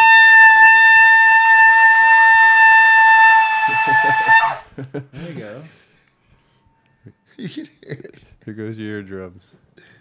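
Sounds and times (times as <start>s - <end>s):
horn blown by mouth: 0.0s - 4.7s.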